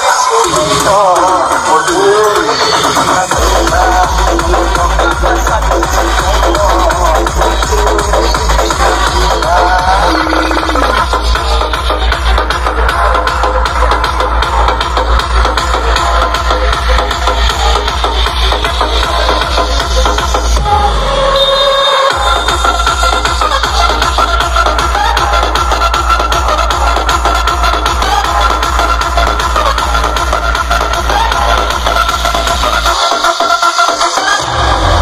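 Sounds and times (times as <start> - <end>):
electronic dance music: 0.0 - 35.0
heavy fast bass beat: 0.0 - 35.0.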